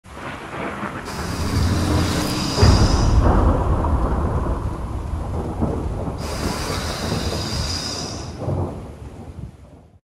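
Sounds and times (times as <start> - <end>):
rain: 0.0 - 10.0
thunder rumbling: 0.1 - 9.9.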